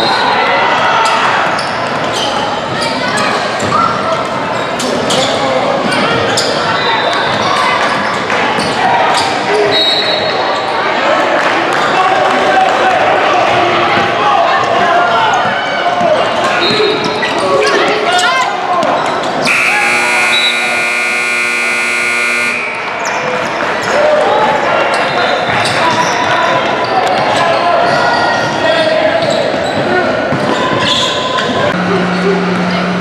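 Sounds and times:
scoreboard buzzer: 19.4s - 23.0s
echoing voices: 19.4s - 24.7s.

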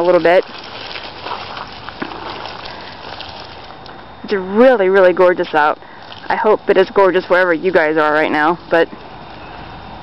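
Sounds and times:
footsteps on gravel: 0.0s - 4.2s.

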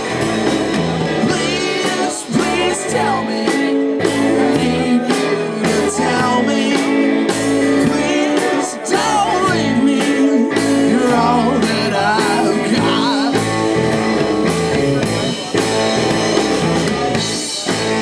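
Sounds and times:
rock band playing live: 0.0s - 18.0s
man singing: 1.0s - 14.3s.

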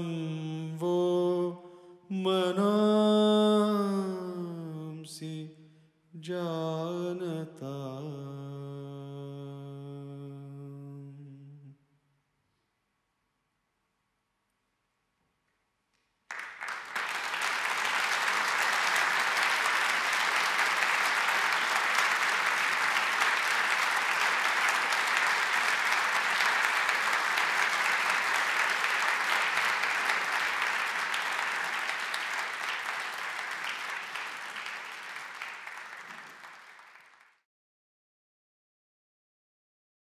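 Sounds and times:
audience applause: 16.3s - 37.4s.

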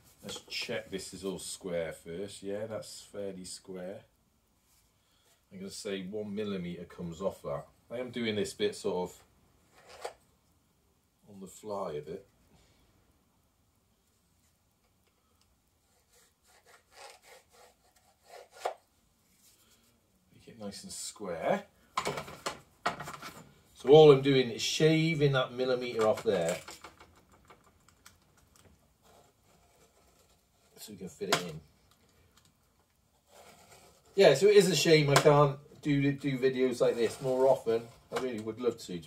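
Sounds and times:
craft knife scraping board: 15.8s - 18.8s, 29.0s - 30.9s, 33.2s - 34.2s, 36.7s - 38.1s.

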